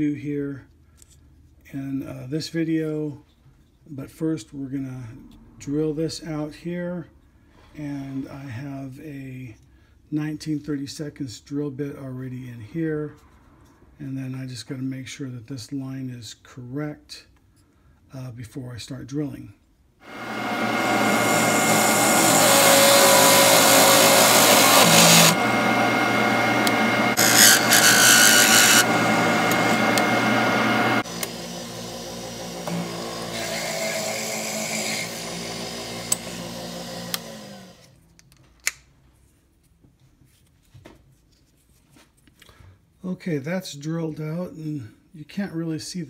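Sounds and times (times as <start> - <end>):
lathe running: 20.0 - 37.8
drill boring into wood: 20.0 - 37.9.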